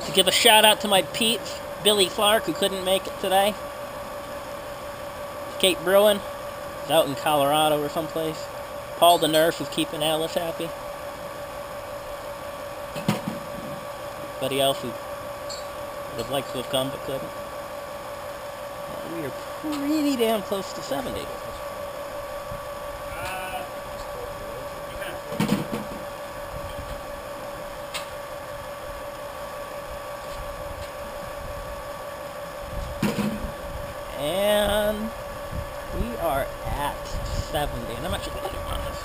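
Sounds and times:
electric pump whining: 0.0s - 39.0s.

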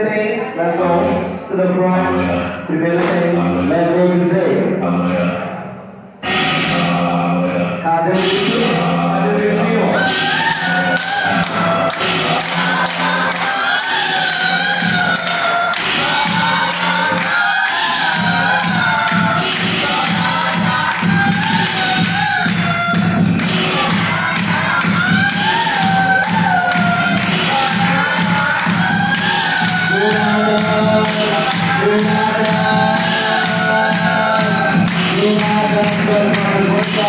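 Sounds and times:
song with vocals over beat: 0.0s - 37.0s.

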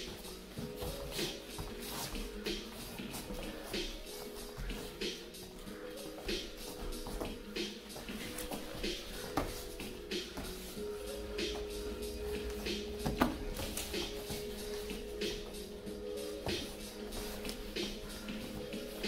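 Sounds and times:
background music with held notes: 0.0s - 19.0s
shuffling on foam mats: 0.0s - 19.0s.

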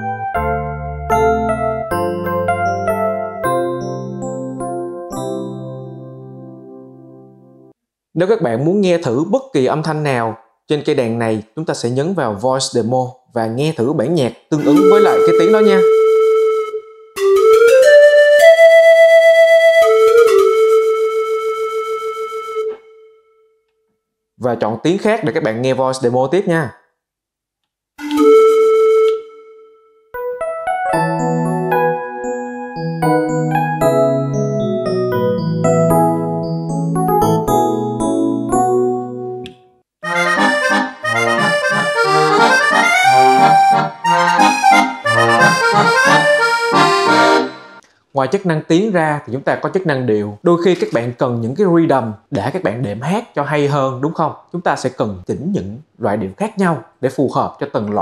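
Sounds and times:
digital piano melody: 0.0s - 7.7s, 14.6s - 23.0s, 28.0s - 47.8s.

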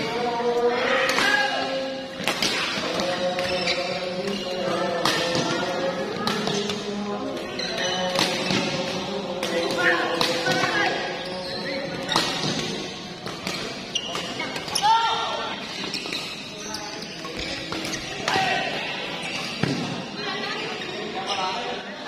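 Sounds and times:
voices in a hall: 0.0s - 22.0s
sneakers squeaking on court: 3.0s - 21.8s.

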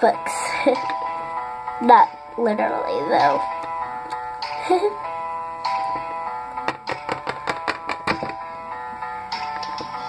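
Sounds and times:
plastic toy tapping on tabletop: 6.6s - 8.4s.

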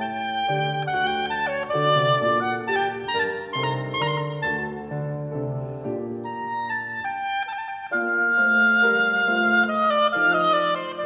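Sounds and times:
oboe melody: 0.0s - 11.0s
piano accompaniment: 0.0s - 11.0s.

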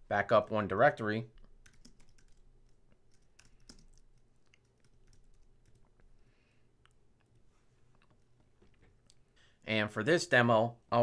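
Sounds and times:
typing on a computer keyboard: 1.4s - 5.9s.

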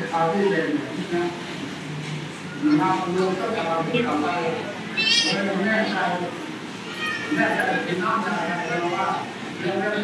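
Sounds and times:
high-pitched wavering cry: 4.9s - 5.4s.

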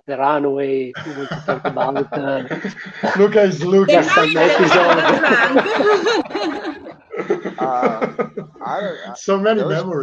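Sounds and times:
people laughing: 1.0s - 10.0s.

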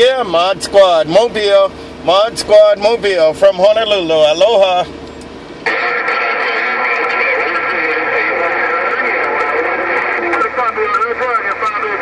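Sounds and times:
radio static: 5.6s - 12.0s.

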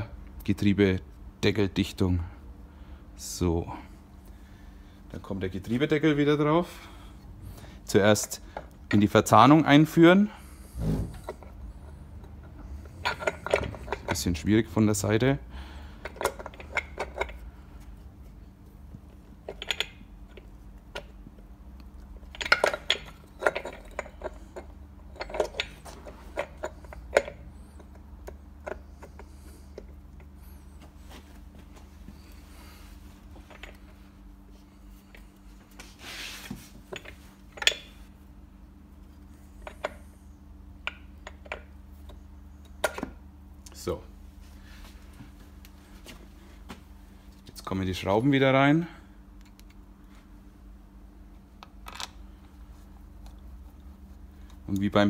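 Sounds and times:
faint steady hum: 0.0s - 55.0s
metal clicks and knocks: 12.2s - 14.4s.

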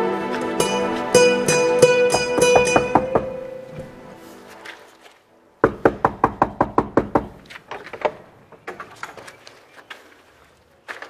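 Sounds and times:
knocking on wooden door: 2.2s - 3.4s, 5.6s - 7.4s.

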